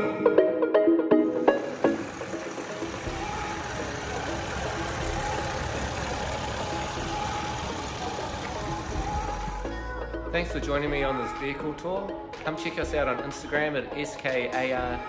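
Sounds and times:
car engine idling: 1.4s - 10.1s.

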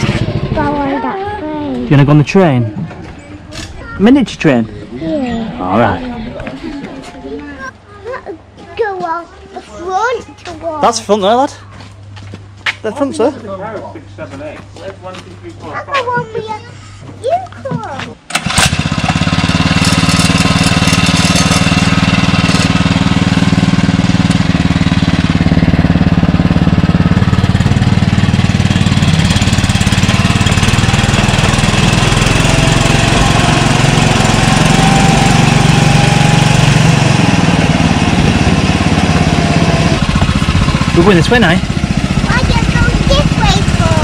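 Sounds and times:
small locomotive engine drone: 0.0s - 8.6s, 17.8s - 44.0s.

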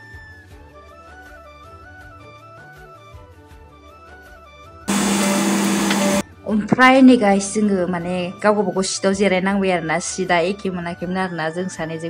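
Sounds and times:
airliner cabin rushing noise: 4.9s - 6.2s
faint background music: 6.2s - 12.0s.

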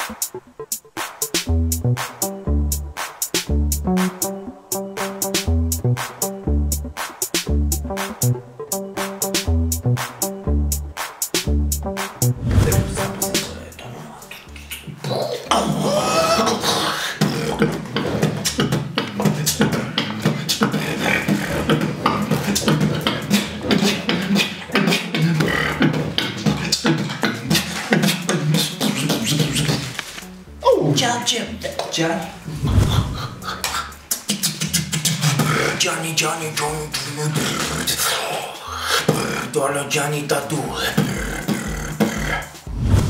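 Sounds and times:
person beatboxing: 0.0s - 30.2s, 31.7s - 39.8s, 40.5s - 42.9s.

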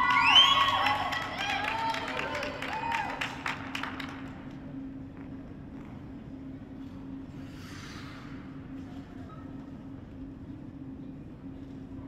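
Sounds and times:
audience applause: 0.0s - 4.3s
low hum: 3.1s - 12.0s.

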